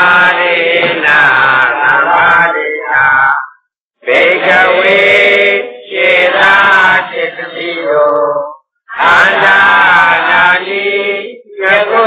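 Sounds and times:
man chanting: 0.1 - 3.5.

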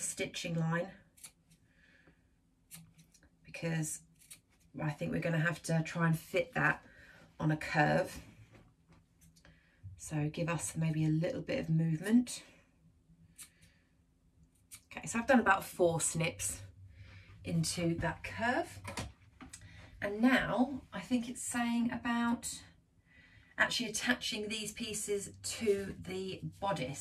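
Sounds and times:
fabric scissors snipping: 1.1 - 1.6
scissors snipping fabric: 1.1 - 1.6, 2.7 - 3.2, 4.1 - 4.7.

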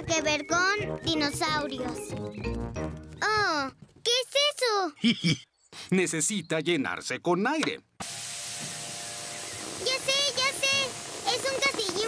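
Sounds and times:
air pump hissing: 8.0 - 12.0.

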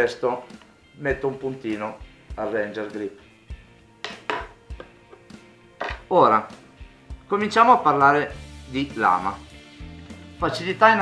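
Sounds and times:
clicks and knocks on a workbench: 4.0 - 6.0.

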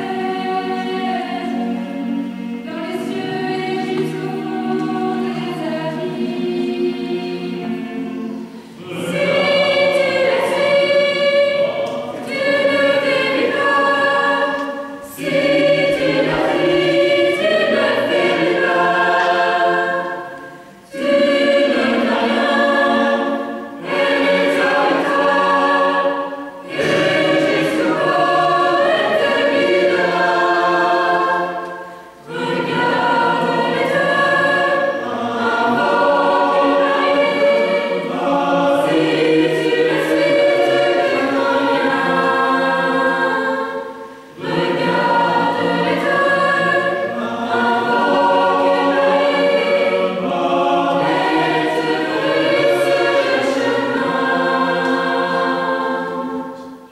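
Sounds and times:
mixed choir singing harmony: 0.0 - 56.9.

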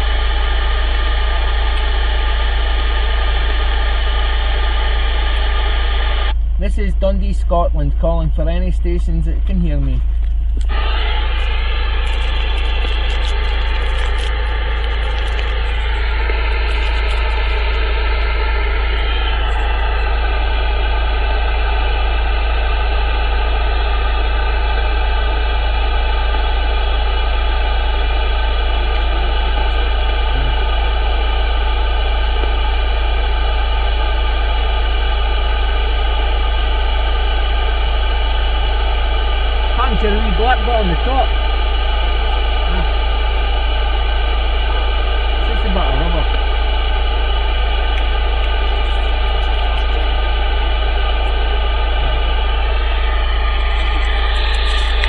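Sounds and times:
low hum: 0.0 - 55.0
radio receiver hiss: 0.0 - 55.0
warbling radio voice: 39.8 - 41.4, 42.7 - 43.0, 45.4 - 46.4.

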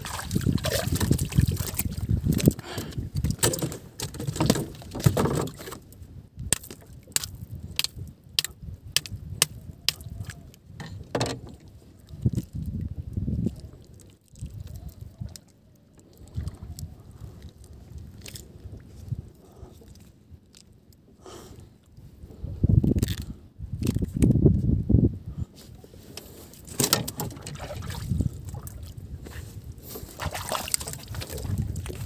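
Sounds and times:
water sloshing against boat hull: 0.0 - 6.0, 10.3 - 12.6, 25.8 - 32.0.

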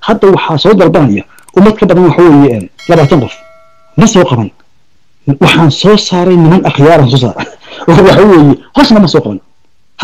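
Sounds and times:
bell-like notification chime: 2.7 - 4.4.

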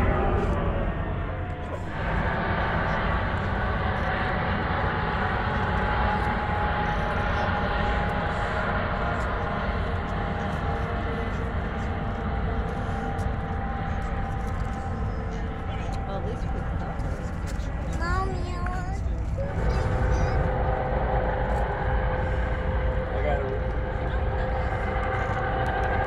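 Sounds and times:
helicopters flying past: 0.0 - 26.0.

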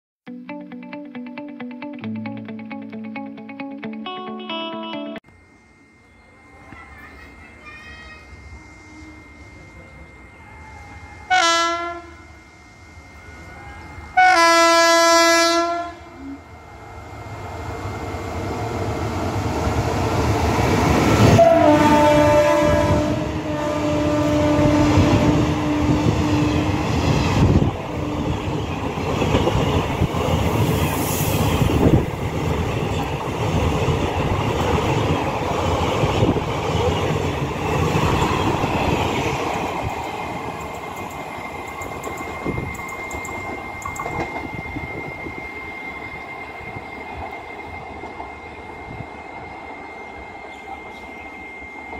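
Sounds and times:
train running noise: 6.0 - 51.9
locomotive horn blasts: 11.3 - 12.4, 14.2 - 16.5, 21.2 - 26.5.

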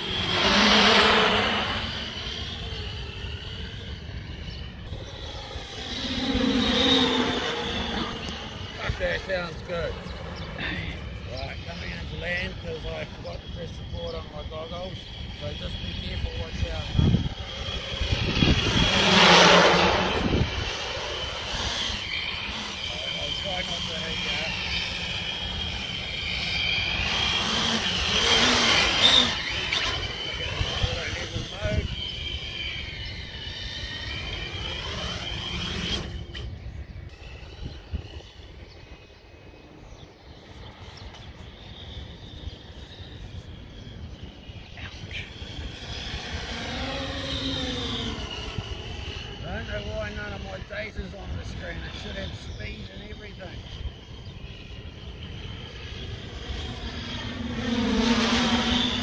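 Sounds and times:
drone propellers whining: 0.0 - 59.0.

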